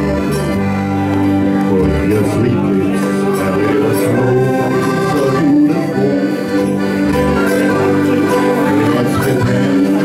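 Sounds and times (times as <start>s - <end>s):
accordion chords: 0.0s - 10.0s
small live band playing: 0.0s - 10.0s.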